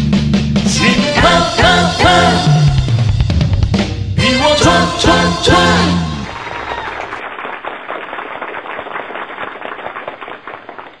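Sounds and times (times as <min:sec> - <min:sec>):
audience applauding: 0:05.5 - 0:11.0.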